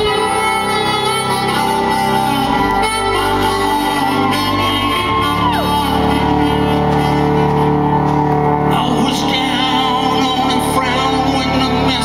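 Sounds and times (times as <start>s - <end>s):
live music held chords: 0.0s - 12.0s.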